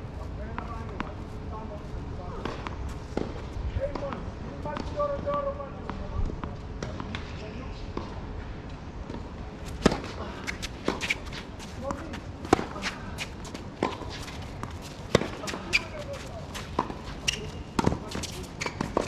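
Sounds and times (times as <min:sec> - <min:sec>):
tennis ball bouncing on court: 0:02.4 - 0:07.3, 0:09.0 - 0:11.2, 0:11.8 - 0:19.0.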